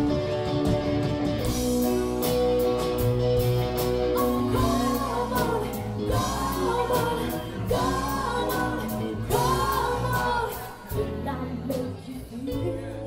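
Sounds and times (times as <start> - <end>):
live rock band playing: 0.0 - 13.0
person singing: 4.2 - 13.0.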